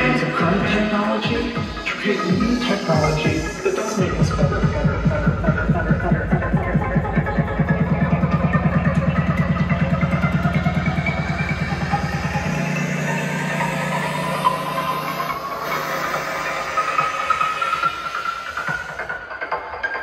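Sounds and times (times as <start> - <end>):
rising synth line: 0.0 - 19.2
psytrance through sound system: 0.0 - 20.0.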